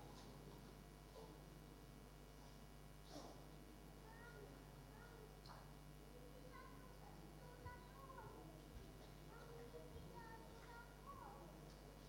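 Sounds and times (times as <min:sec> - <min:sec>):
child's high-pitched vocal sounds: 0:04.1 - 0:05.4.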